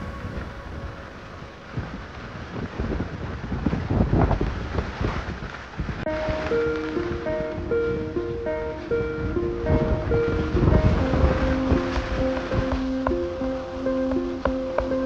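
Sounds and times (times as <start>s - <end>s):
water noise: 0.0s - 15.0s
wind buffeting microphone: 0.0s - 15.0s
plucked-string background music: 6.1s - 15.0s.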